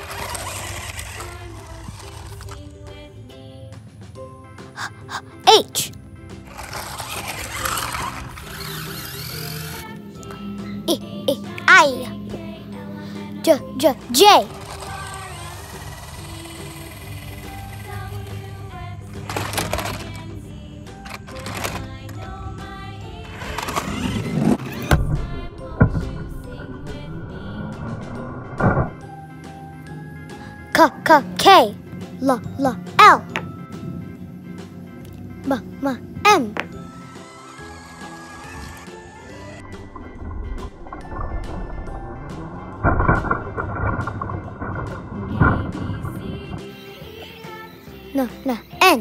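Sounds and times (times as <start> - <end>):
wheels rustling on wood chips: 0.0 - 3.0, 6.4 - 9.9, 14.4 - 25.1
toy car electric motor whirring: 0.0 - 3.1, 4.8 - 26.1, 35.5 - 41.5
background music: 0.0 - 49.0.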